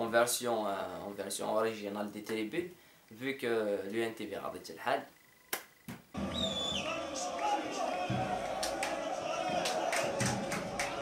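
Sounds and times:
stadium crowd chanting: 6.2s - 11.0s.

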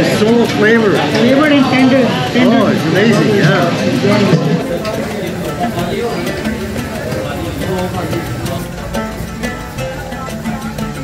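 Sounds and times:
background music: 0.0s - 11.0s
voices: 0.0s - 11.0s.

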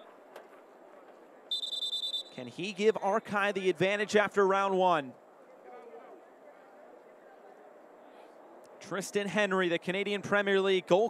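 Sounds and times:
faint stadium ambience: 0.0s - 11.0s
referee's whistle blast: 1.5s - 2.5s.

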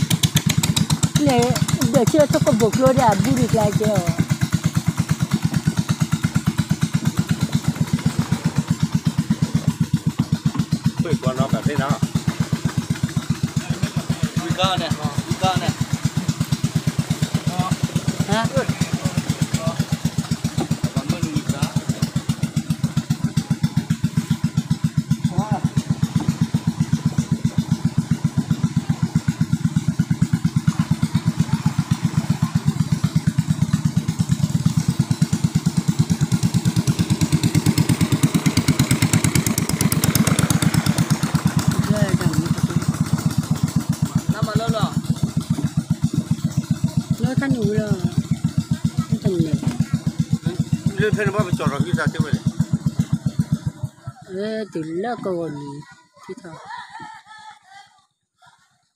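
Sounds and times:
small boat engine running: 0.0s - 58.9s.

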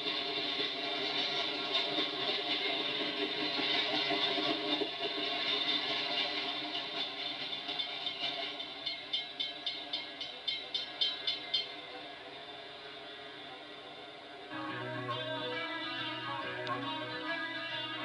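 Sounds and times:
rhythmic clicks of wheels: 0.0s - 13.2s
train rumbling rush: 0.0s - 18.0s.

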